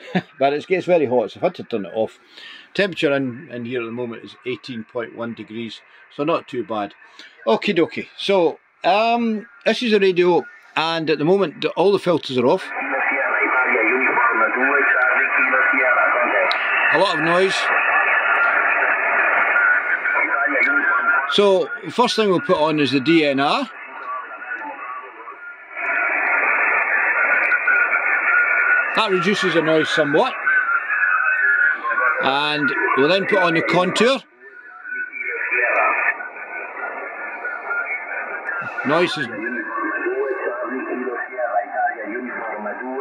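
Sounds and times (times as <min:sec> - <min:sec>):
radio band noise rush: 0:00.0 - 0:43.0
weak voice on radio: 0:08.9 - 0:25.5, 0:26.3 - 0:43.0.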